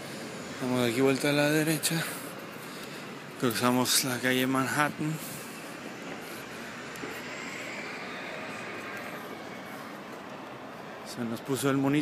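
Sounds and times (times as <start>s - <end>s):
traffic hum: 0.0s - 12.0s.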